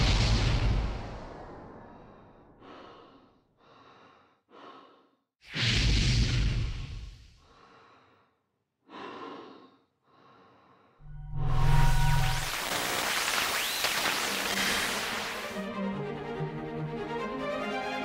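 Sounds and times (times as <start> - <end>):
breathy electronic noise bursts: 11.0 - 15.6.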